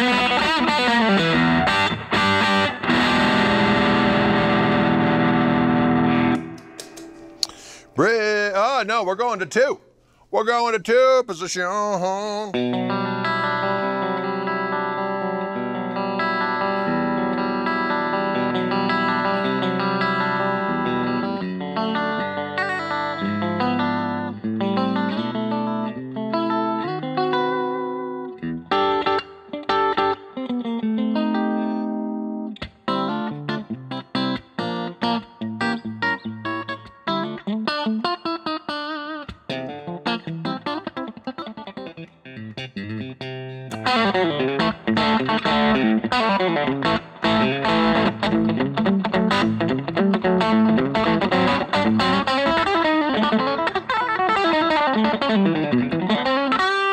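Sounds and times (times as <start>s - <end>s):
electric guitar through an amp: 0.0s - 9.0s, 10.9s - 56.9s.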